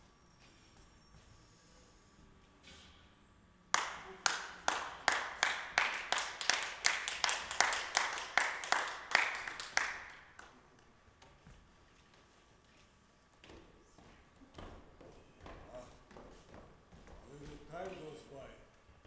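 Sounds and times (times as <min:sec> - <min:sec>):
hands clapping with echo: 0:03.7 - 0:10.9.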